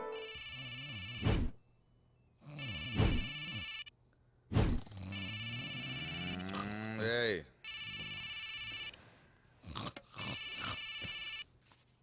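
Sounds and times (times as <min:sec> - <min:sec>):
electronic phone ringing: 0:00.0 - 0:01.2, 0:02.6 - 0:03.9, 0:05.2 - 0:06.4, 0:07.6 - 0:09.0, 0:10.3 - 0:11.5.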